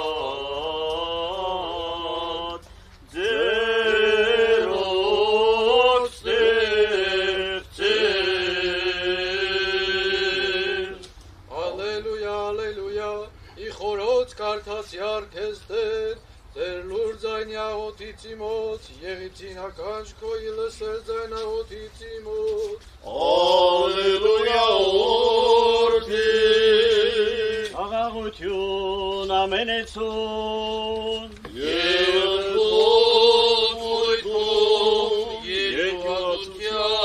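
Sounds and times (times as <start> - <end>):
clergy chanting a prayer: 0.0 - 37.0
breath: 2.7 - 3.0, 16.2 - 16.5.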